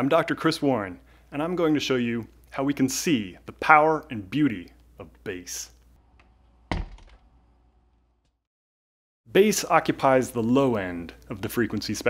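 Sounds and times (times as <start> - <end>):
heavy deep thunk: 6.7 - 7.2.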